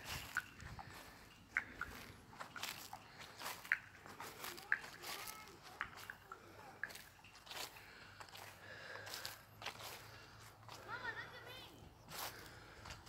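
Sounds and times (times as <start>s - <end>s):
distant children calling: 0.0s - 13.0s
soft footsteps: 0.0s - 13.0s.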